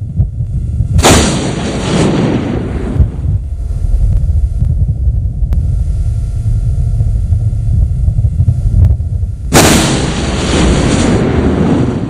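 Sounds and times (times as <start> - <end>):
loud burst of noise: 0.0 - 12.0
steady low rumble: 0.0 - 12.0.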